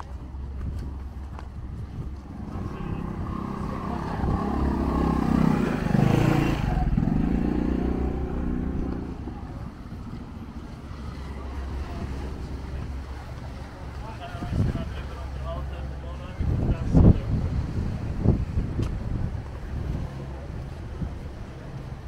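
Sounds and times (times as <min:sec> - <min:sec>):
wind noise on microphone: 0:00.0 - 0:13.6, 0:14.2 - 0:15.1, 0:16.2 - 0:22.0
motor engine passing by: 0:02.3 - 0:13.3.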